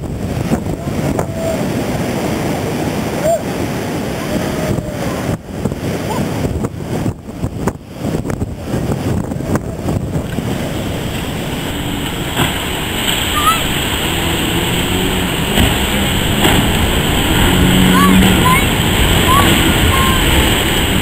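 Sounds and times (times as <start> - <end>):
heavy surf breaking: 0.0 - 21.0
wind buffeting microphone: 0.0 - 21.0.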